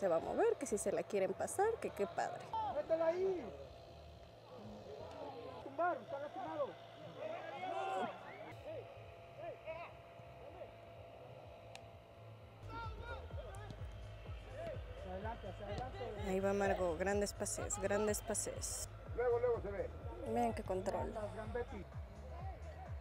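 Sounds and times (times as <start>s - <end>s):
distant players shouting: 12.6s - 18.6s
background music: 12.6s - 23.0s.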